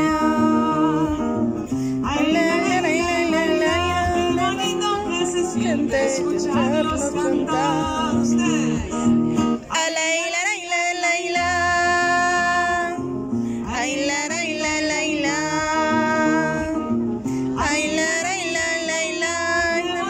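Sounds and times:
strummed acoustic guitar: 0:00.0 - 0:20.0.

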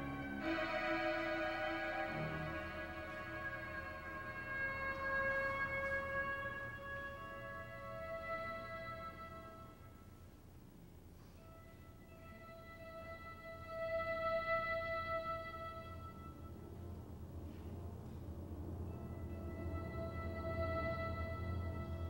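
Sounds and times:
solo violin long notes: 0:00.0 - 0:09.9
steady low hum: 0:00.0 - 0:22.0.

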